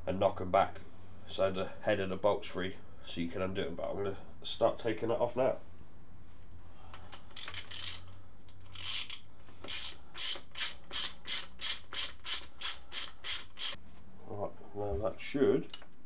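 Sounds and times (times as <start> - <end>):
ratchet spanner clicking: 7.4 - 8.1, 8.7 - 13.8.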